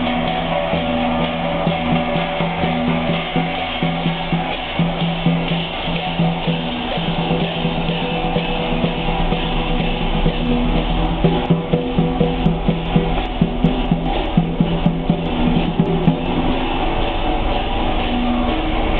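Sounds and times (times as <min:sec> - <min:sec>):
gong and drum ensemble playing: 0:00.0 - 0:18.9.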